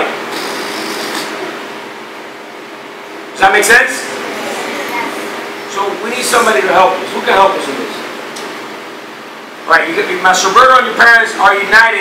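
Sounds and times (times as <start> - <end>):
air hissing from balloon: 0.3 - 1.4.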